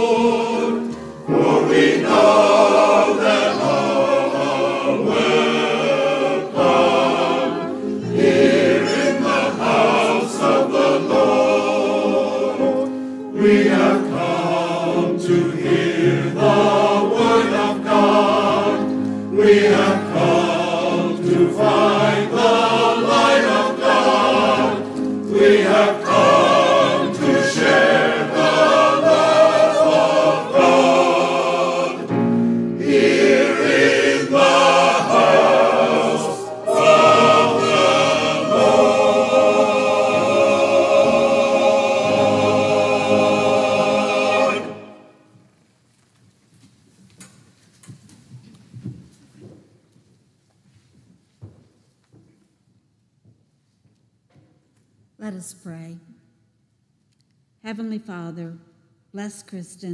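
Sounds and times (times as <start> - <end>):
piano accompaniment: 0.0 - 45.3
choir singing: 0.0 - 45.4.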